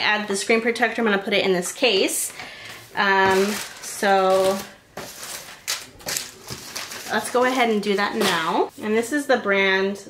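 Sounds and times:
packaging rustling: 3.0 - 8.6.

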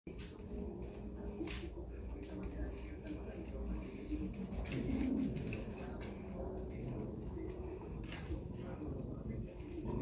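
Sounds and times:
dogs growling in play: 4.5 - 10.0.

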